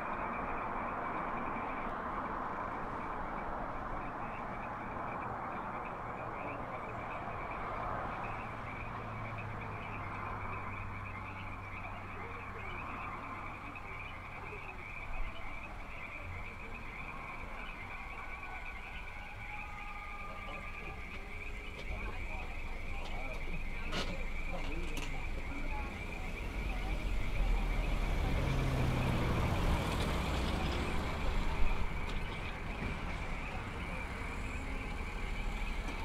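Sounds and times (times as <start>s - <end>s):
high chirring chorus: 0.0s - 36.0s.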